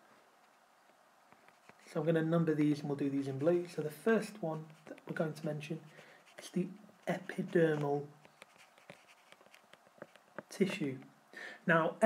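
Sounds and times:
stylus tapping on tablet screen: 7.7s - 11.1s.

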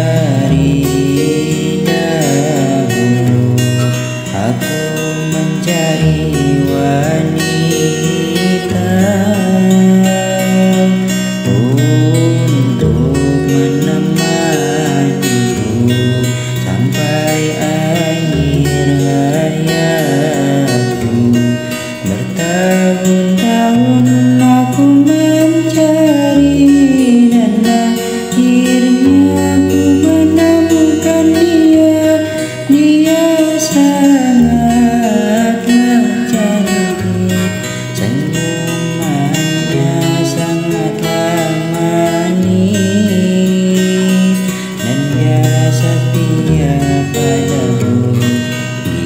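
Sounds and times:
acoustic guitar chords: 0.0s - 49.0s
person singing: 0.0s - 49.0s.

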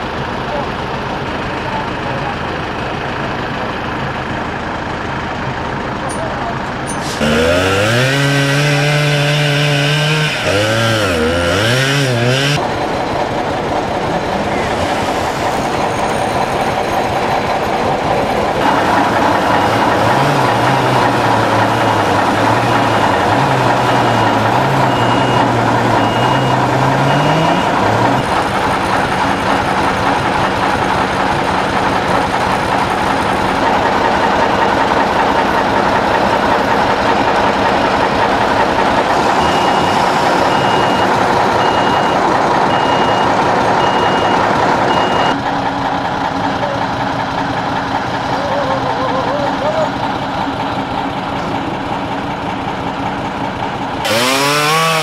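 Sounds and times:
diesel engine running: 0.0s - 55.0s
warning beeper beeping: 23.9s - 27.9s, 39.3s - 45.4s.

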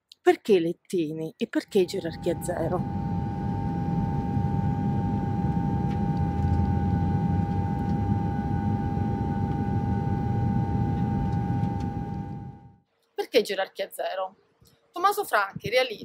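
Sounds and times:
held tone: 1.7s - 12.8s
low rumbling drone: 1.8s - 12.8s.

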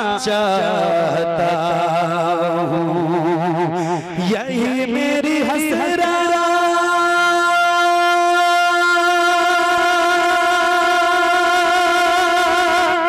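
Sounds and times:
man singing a long high note: 0.0s - 13.0s.

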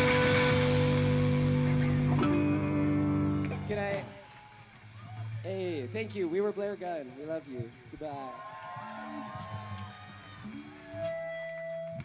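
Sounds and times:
low bass line: 0.0s - 4.1s
live band music: 0.0s - 4.2s.

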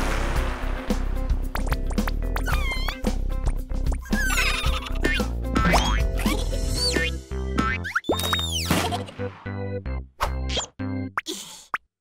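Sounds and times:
cartoon background music: 0.7s - 11.4s
boing sound effects: 4.0s - 9.2s.

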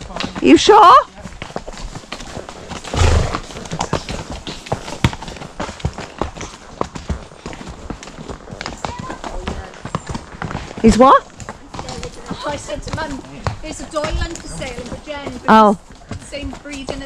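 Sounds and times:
horse hooves on stony track: 0.0s - 17.0s.

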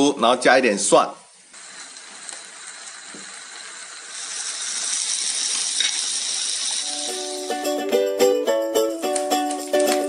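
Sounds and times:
food sizzling on grill plate: 1.4s - 7.9s.

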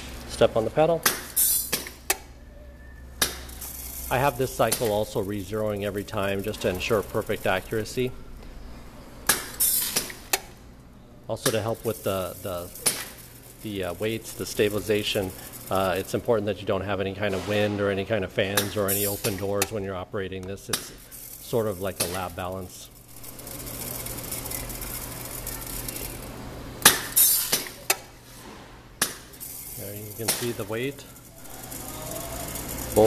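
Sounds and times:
pneumatic hiss: 1.1s - 2.2s, 3.1s - 10.6s, 11.4s - 16.1s, 18.6s - 19.6s, 26.8s - 33.0s
seeds trickling into metal hopper: 3.5s - 8.1s, 11.3s - 17.4s, 18.6s - 19.8s, 20.9s - 26.3s, 29.4s - 33.0s.

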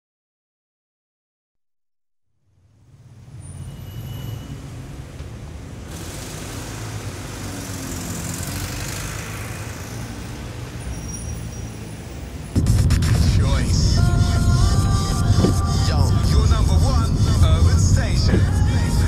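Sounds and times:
rumble of passing vehicles: 2.4s - 19.0s
bright traffic hiss: 5.4s - 10.4s.

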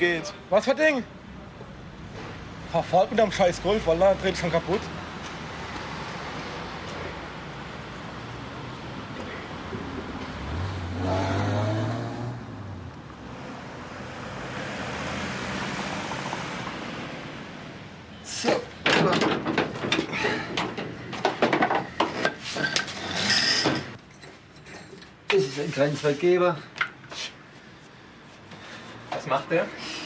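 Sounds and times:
vehicle passing: 3.4s - 18.1s
sharp knocks and clatters: 18.5s - 25.4s.

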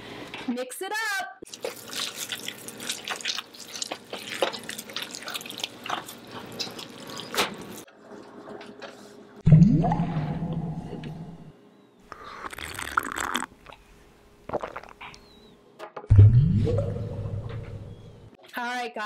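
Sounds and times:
hands squelching wet dough: 1.5s - 7.9s
loud low rising sound: 9.5s - 11.5s.

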